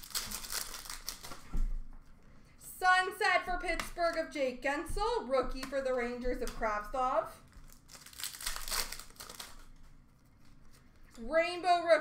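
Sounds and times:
card pack wrapper crinkling: 0.0s - 1.7s, 7.4s - 11.1s.

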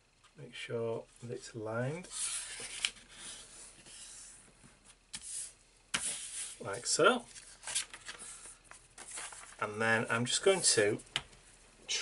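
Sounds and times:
paper rubbing: 2.1s - 4.4s.

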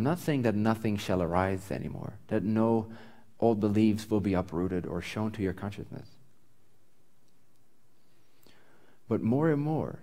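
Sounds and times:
person speaking: 0.0s - 6.3s, 9.0s - 10.0s
faint hiss: 0.0s - 10.0s
person breathing: 2.9s - 3.4s, 8.0s - 9.1s.

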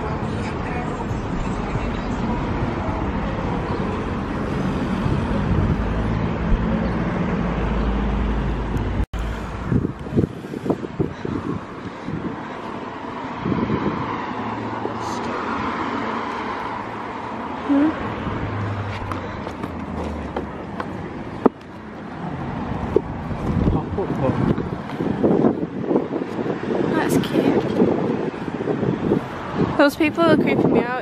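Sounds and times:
cars passing: 0.0s - 31.0s
wind on microphone: 2.3s - 7.4s, 8.2s - 19.1s, 22.3s - 31.0s.

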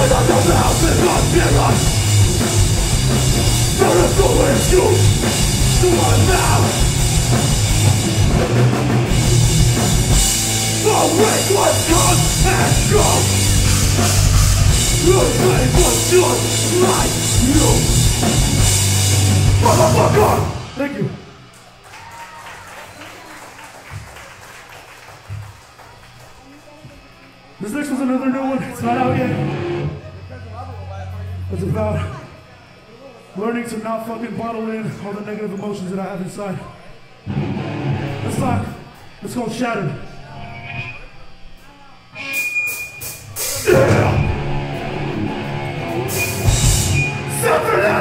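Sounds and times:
dull low thumps: 0.0s - 10.8s
ringing from amplified instruments: 0.0s - 21.4s
distorted electric guitars and drums: 0.0s - 21.5s, 28.8s - 30.2s, 37.2s - 48.0s
cymbal strokes counting in: 0.0s - 21.6s, 42.1s - 48.0s
steady low hum: 0.0s - 21.8s
crowd noise: 0.0s - 48.0s
light scattered applause: 21.6s - 27.1s
high feedback whistle: 42.1s - 44.5s, 45.9s - 48.0s.

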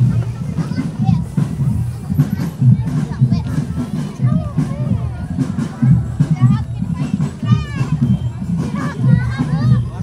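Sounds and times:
children chattering and calling out: 0.0s - 10.0s
marching drum band: 0.0s - 10.0s.

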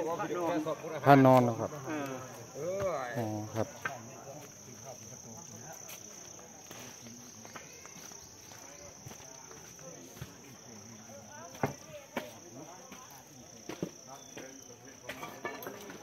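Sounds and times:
faint voices of people: 0.0s - 16.0s
insects droning: 0.0s - 16.0s.

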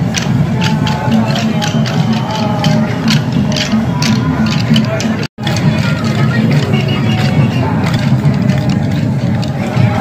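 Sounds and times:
crowd voices: 0.0s - 10.0s
music: 0.0s - 10.0s.

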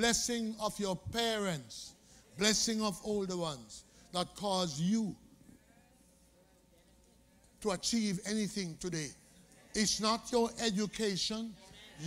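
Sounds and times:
man preaching: 0.0s - 5.2s, 7.6s - 9.2s, 9.8s - 12.0s.

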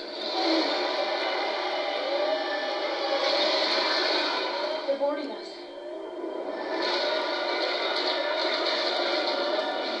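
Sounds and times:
spaceship battle sound effects: 0.0s - 10.0s.

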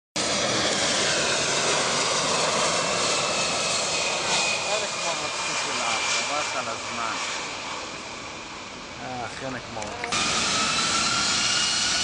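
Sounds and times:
jet engines roaring with whine: 0.2s - 12.0s.

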